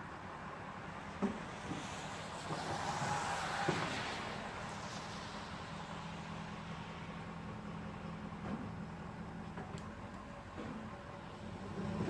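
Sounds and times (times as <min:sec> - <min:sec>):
diesel pickup truck driving: 0:00.2 - 0:12.0.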